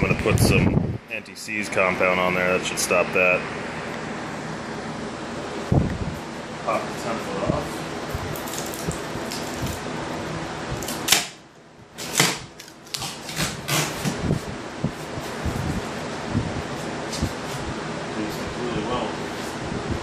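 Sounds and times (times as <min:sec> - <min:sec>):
steady background noise: 0:00.0 - 0:20.0.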